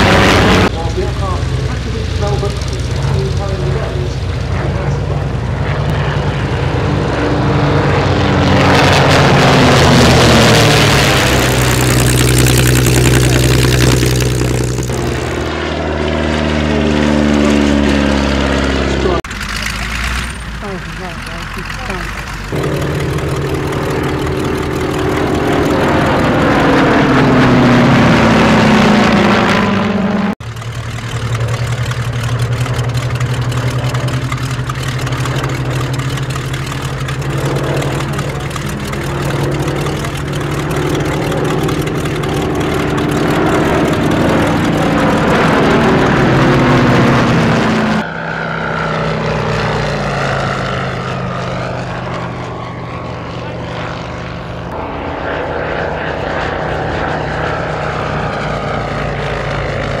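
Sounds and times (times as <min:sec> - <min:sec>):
dull aircraft engine drone: 0:00.0 - 1:00.0
propeller planes flying overhead: 0:00.0 - 1:00.0.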